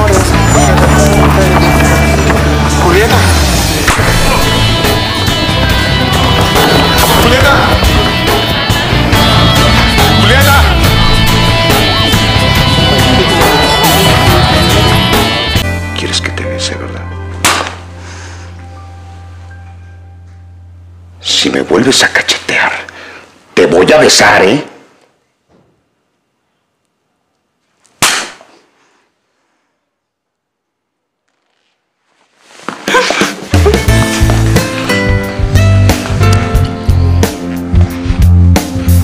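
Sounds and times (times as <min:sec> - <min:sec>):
loud dance music: 0:03.2 - 0:15.6
slap across face: 0:17.4 - 0:17.8, 0:28.0 - 0:28.6.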